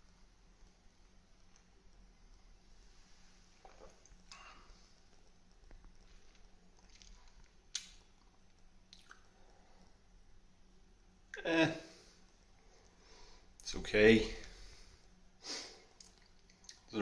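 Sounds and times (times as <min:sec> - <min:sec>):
person sipping coffee: 0:03.6 - 0:07.5.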